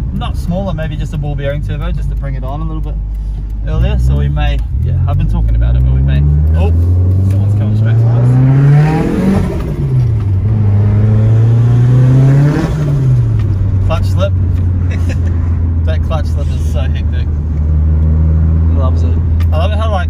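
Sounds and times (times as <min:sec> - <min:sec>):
car engine from inside cabin: 0:00.0 - 0:20.0.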